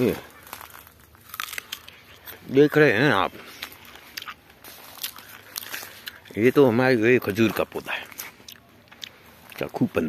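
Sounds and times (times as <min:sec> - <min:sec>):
dry leaves and twigs rustling: 0:00.0 - 0:10.0.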